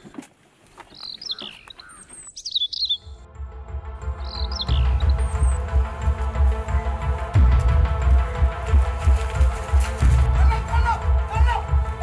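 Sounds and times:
birds chirping: 0.0s - 3.3s, 3.9s - 8.4s
background music with deep bass: 3.0s - 12.0s.

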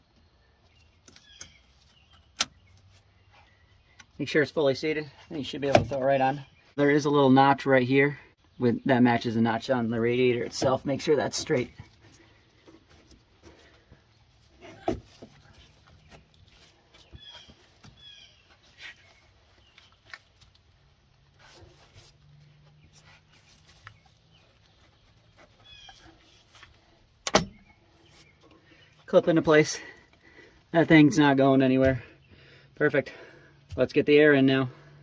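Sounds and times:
rubber hose rubbing and clicks: 10.4s - 29.2s
faint bird chirps: 21.5s - 29.1s.

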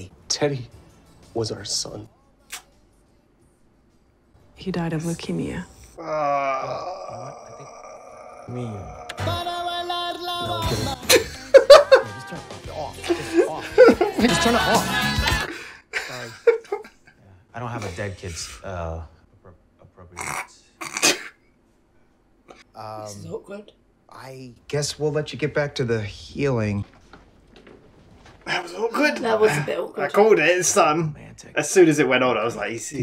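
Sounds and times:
man groaning: 6.0s - 9.4s
person coughing: 20.8s - 21.4s.

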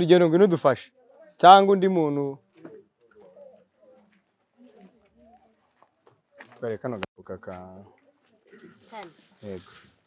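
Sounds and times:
man speaking: 0.0s - 2.4s, 9.4s - 9.8s.

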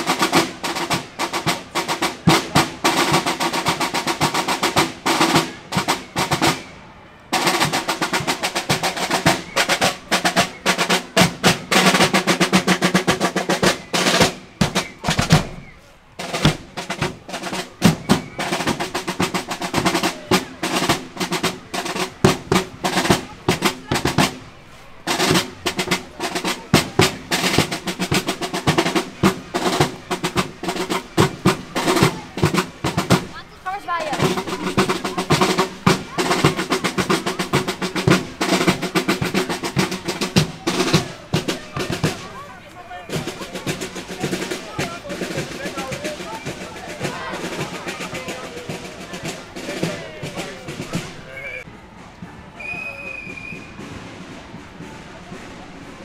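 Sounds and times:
marching snare drum cadence: 0.0s - 56.0s.

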